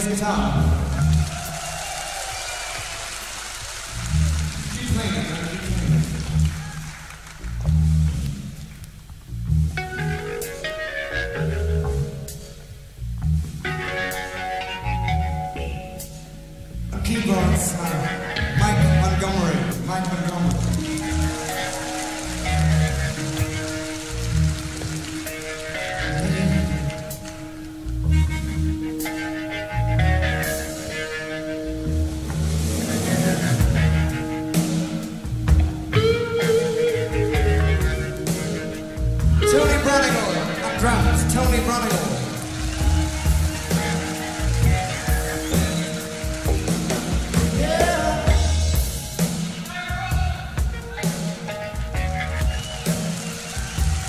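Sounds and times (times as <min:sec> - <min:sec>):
electric bass guitar notes: 0:00.0 - 0:01.6, 0:03.9 - 0:06.8, 0:07.4 - 0:54.0
drums: 0:00.0 - 0:54.0
hall noise: 0:16.9 - 0:54.0.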